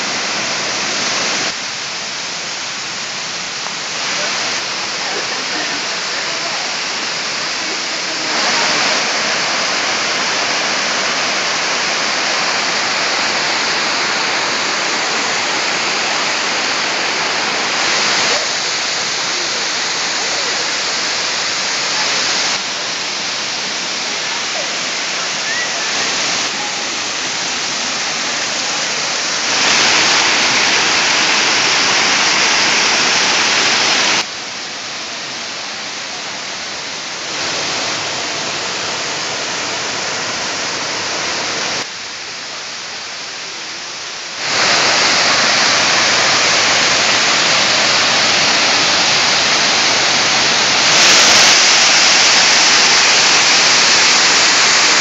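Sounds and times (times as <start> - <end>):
waterfall rushing over rock: 0.0 - 55.0.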